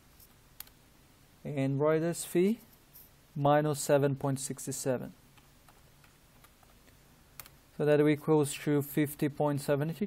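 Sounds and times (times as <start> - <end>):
man speaking: 1.4 - 2.7, 3.4 - 5.2, 7.8 - 10.0.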